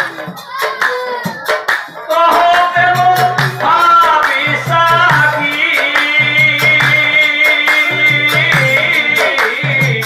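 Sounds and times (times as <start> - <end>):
people clapping: 0.8 - 2.1
man singing: 2.0 - 10.0.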